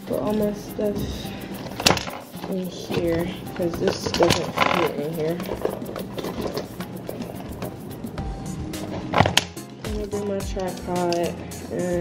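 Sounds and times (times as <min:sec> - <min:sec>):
items clattering: 0:00.0 - 0:07.9, 0:08.8 - 0:11.4
bag rustling and items handled: 0:00.0 - 0:11.4
background music: 0:00.0 - 0:12.0.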